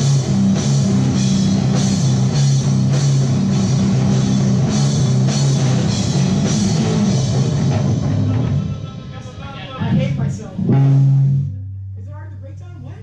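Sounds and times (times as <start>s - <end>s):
rock band playing loud: 0.0s - 11.6s.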